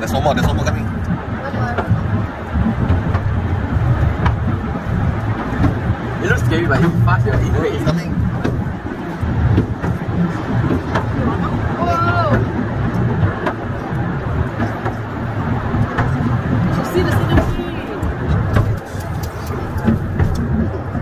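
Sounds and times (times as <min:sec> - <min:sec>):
wheels rumbling on rails: 0:00.0 - 0:21.0.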